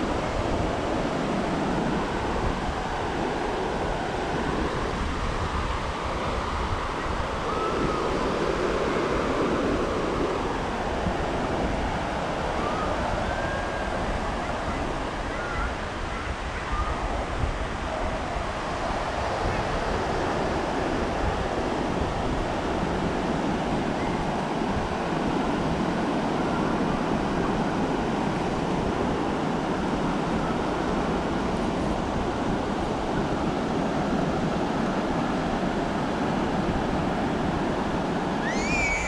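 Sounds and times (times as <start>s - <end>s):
ocean surf on beach: 0.0s - 39.0s
wind rumbling on microphone: 0.0s - 39.0s.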